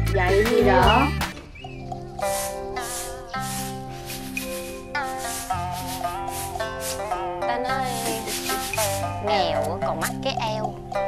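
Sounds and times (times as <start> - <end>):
background music sustained notes: 0.0 - 11.0
rice swishing in bamboo tray: 2.2 - 7.2, 7.9 - 9.2.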